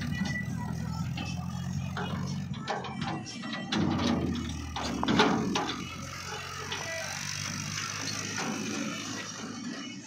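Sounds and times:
knocks and rattles: 0:00.0 - 0:09.6
tractor engine running: 0:00.0 - 0:10.0.

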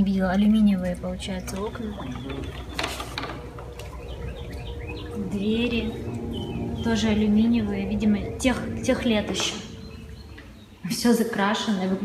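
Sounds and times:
low steady rumble: 0:00.0 - 0:11.9
small birds chirping: 0:00.0 - 0:12.0.

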